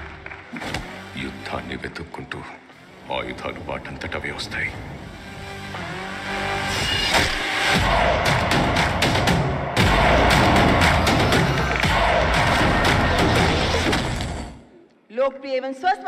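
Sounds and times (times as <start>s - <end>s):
dramatic music: 2.8s - 14.8s
heavy hit: 7.0s - 14.6s
hits and crashes: 7.0s - 14.6s.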